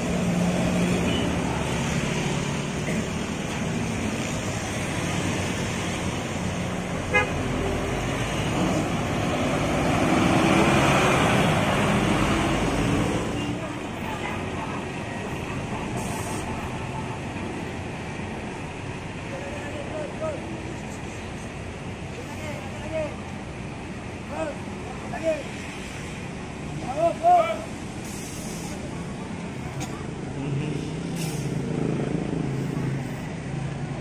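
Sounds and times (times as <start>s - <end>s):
traffic noise: 0.0s - 34.0s.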